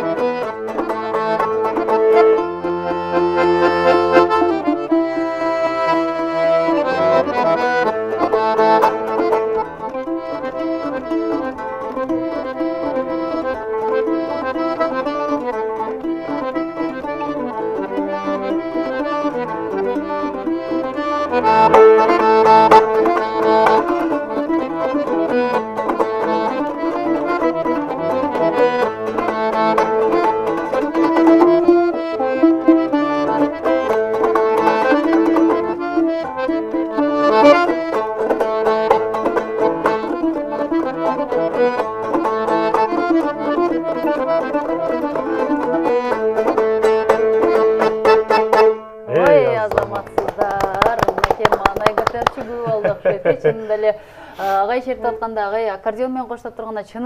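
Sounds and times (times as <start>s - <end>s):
plucked lute: 0.0s - 53.8s
accordion playing chords: 0.0s - 55.7s.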